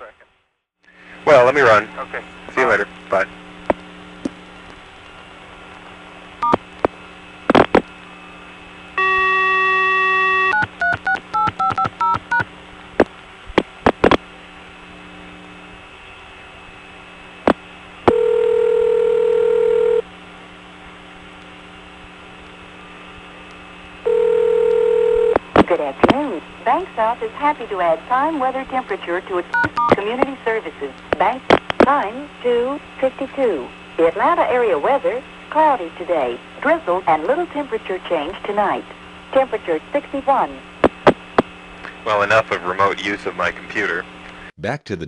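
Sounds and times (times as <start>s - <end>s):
recorded announcement voice: 0.0s - 0.3s, 1.2s - 3.3s, 25.6s - 40.6s, 42.0s - 45.0s
steady dial tone: 6.4s - 6.9s, 9.0s - 12.5s, 18.1s - 20.0s, 24.0s - 26.2s, 29.5s - 30.3s
telephone ringback tone: 9.0s - 12.4s, 18.1s - 20.0s, 24.0s - 25.4s
touch-tone digits dialled: 10.5s - 12.4s, 29.6s - 30.0s
telephone line clicks: 10.6s - 12.4s.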